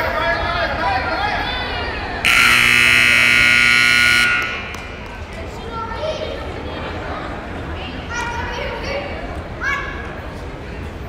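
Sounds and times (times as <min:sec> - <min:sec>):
scoreboard buzzer: 0:02.3 - 0:05.2.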